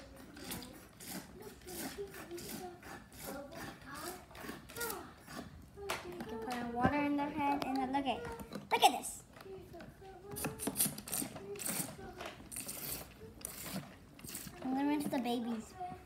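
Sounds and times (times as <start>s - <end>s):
child murmuring: 0.0s - 6.5s
plastic toy parts clicking: 10.3s - 15.3s.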